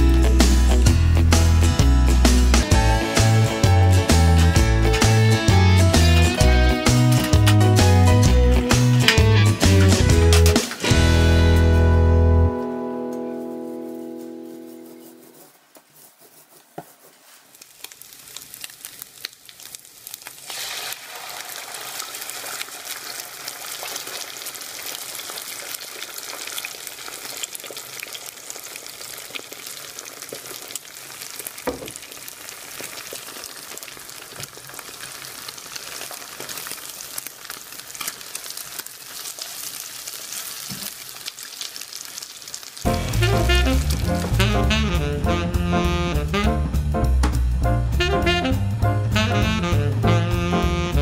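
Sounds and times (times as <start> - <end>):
loud music: 0.0 - 12.6, 42.9 - 51.0
egg sizzling in frying pan: 16.3 - 45.2.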